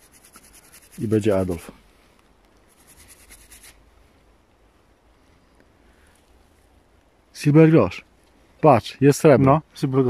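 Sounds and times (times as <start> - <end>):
toothbrush scrubbing a coin: 0.0 - 1.5, 2.7 - 3.8.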